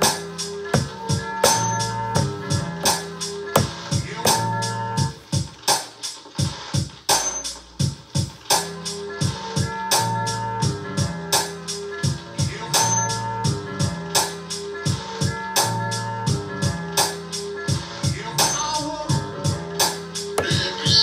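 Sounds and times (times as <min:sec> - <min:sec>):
drum pattern: 0:00.0 - 0:08.4, 0:20.4 - 0:21.0.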